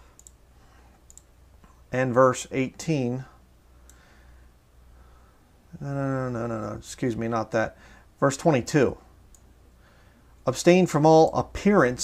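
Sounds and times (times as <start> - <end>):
faint computer clicks: 0.0 - 1.8
low steady hum: 0.0 - 12.0.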